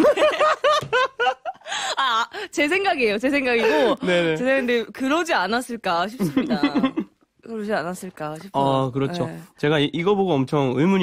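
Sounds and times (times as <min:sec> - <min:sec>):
man and woman laughing: 0:00.0 - 0:02.3, 0:06.2 - 0:07.1.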